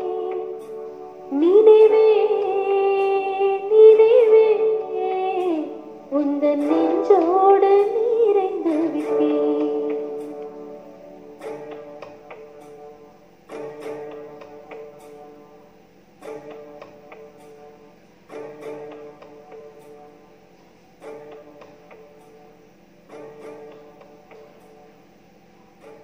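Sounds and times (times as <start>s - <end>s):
ringing backing music chords: 0.0s - 26.0s.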